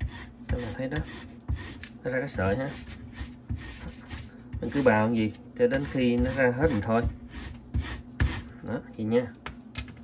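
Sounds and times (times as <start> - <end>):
root scraping on metal grater: 5.7 - 8.4.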